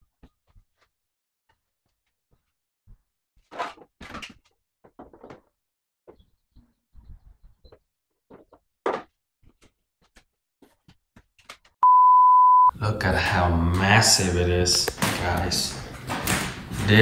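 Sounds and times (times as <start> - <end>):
loud steady beep: 11.8 - 12.7.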